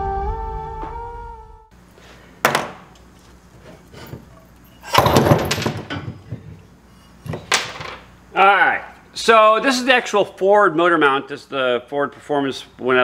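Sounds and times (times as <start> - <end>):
metal clanks and knocks: 3.9 - 8.1.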